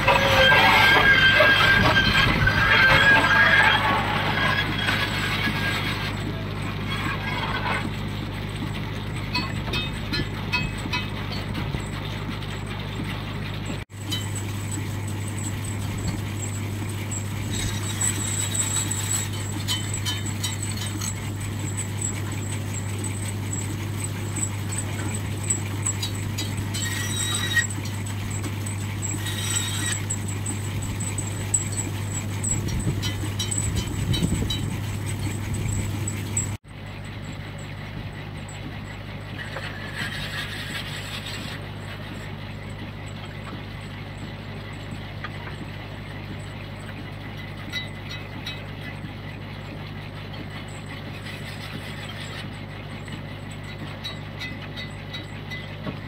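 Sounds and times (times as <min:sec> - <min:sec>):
steam engine low hum: 0:00.0 - 0:56.0.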